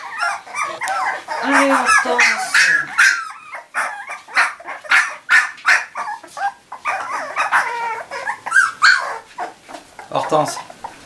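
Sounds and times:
puppies yipping and whimpering: 0:00.0 - 0:11.0.

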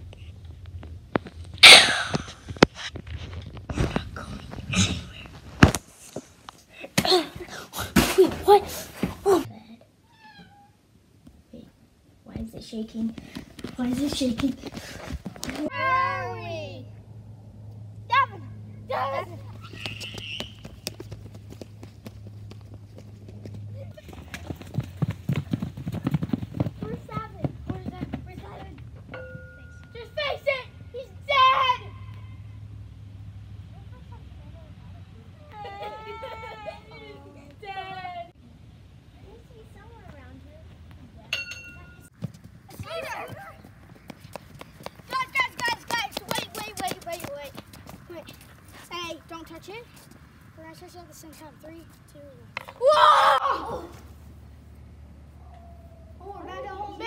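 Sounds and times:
children shouting and laughing: 0:01.6 - 0:02.5, 0:06.7 - 0:09.5, 0:14.0 - 0:17.0, 0:18.1 - 0:20.7, 0:29.9 - 0:32.6, 0:35.0 - 0:38.4, 0:42.7 - 0:49.1, 0:52.6 - 0:54.2, 0:55.3 - 0:57.0
children running on wet pavement: 0:13.0 - 0:15.7, 0:19.4 - 0:28.8, 0:42.2 - 0:50.3.

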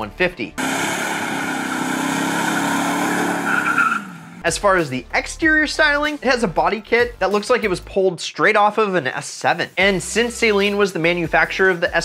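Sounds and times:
engine at high revs: 0:00.6 - 0:04.4.

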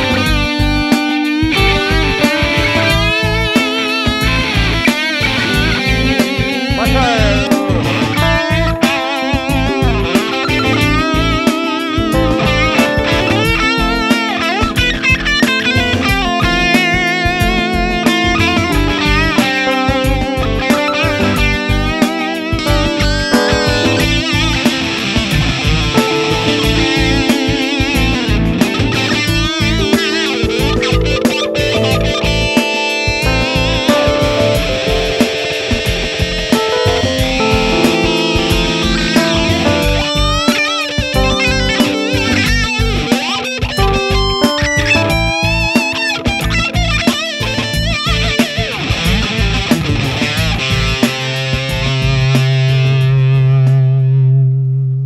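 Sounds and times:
backing track: 0:00.0 - 0:55.0
electric guitar lead with vibrato: 0:00.0 - 0:55.0.

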